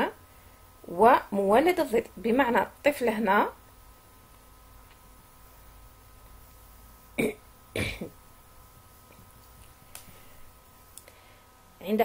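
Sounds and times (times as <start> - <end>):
person clearing throat: 7.2 - 8.2.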